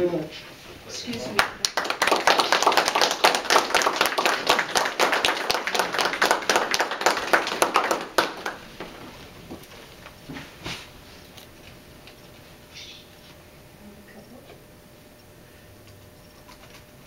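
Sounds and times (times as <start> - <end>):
people clapping: 1.0 - 9.1.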